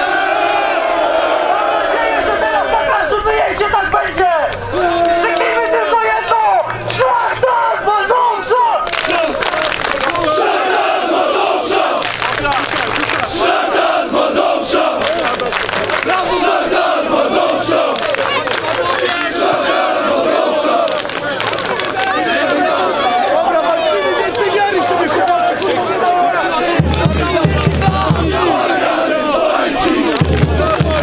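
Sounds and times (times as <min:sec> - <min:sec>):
crowd shouting and chanting: 0:00.0 - 0:31.0
crowd clapping: 0:03.6 - 0:07.1, 0:08.8 - 0:10.9, 0:11.7 - 0:16.7, 0:17.3 - 0:23.1, 0:24.2 - 0:31.0.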